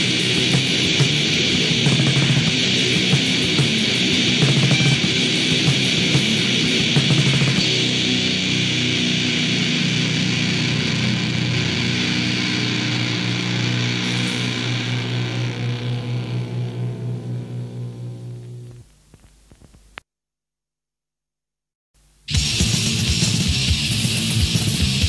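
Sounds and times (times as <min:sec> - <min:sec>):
distorted guitar and bass chord: 0:00.0 - 0:18.9, 0:22.3 - 0:25.0.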